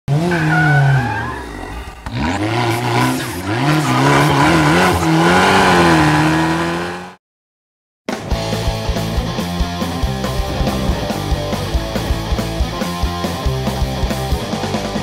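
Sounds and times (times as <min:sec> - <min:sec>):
car engine revving: 0:00.1 - 0:07.2, 0:08.7 - 0:14.7.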